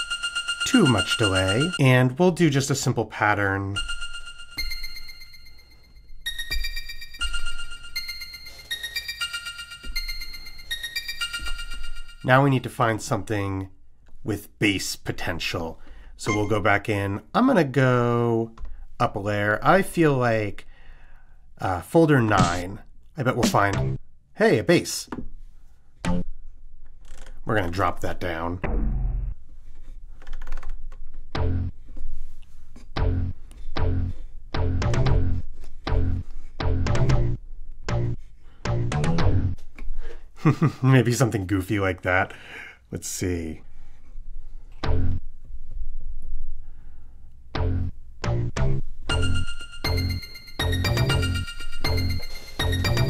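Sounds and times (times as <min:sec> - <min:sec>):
low synth bass notes: 0:23.4 - 0:24.0, 0:28.6 - 0:29.4, 0:31.4 - 0:31.8, 0:33.0 - 0:39.6, 0:44.8 - 0:45.3, 0:47.5 - 0:53.0
synth notes with reverb: 0:28.6 - 0:29.4, 0:47.6 - 0:53.0.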